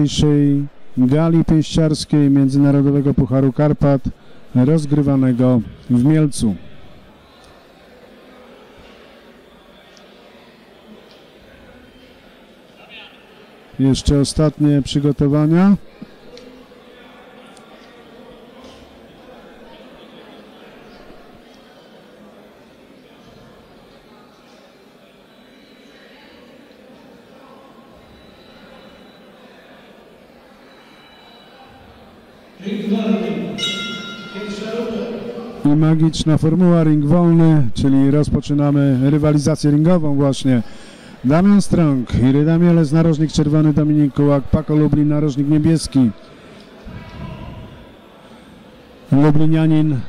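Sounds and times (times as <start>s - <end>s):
distant indistinct voices: 0.0s - 37.6s, 38.6s - 49.8s
sports hall background noise: 0.0s - 50.0s.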